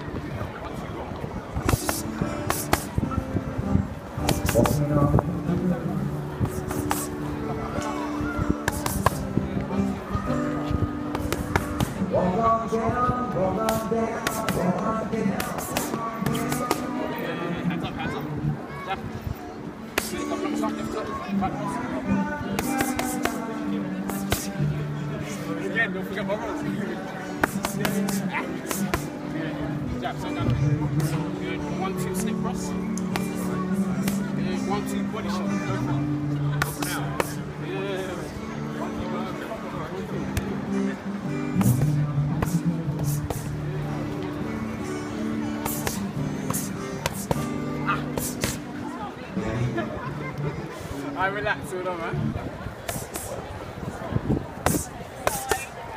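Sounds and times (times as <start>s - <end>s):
boxing gloves striking mitts: 4.2s - 4.8s, 6.6s - 7.1s, 11.2s - 12.0s, 15.4s - 16.9s, 27.4s - 29.1s, 45.6s - 47.5s, 48.1s - 48.6s
pop music with vocals: 11.8s - 17.5s, 21.6s - 24.8s.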